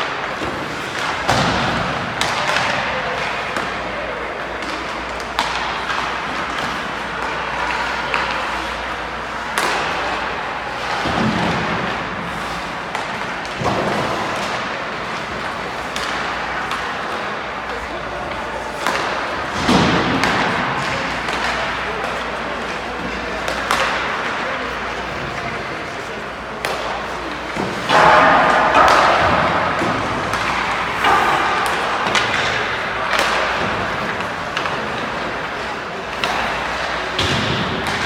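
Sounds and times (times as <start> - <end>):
hockey pucks and sticks knocking: 0.0 - 38.0.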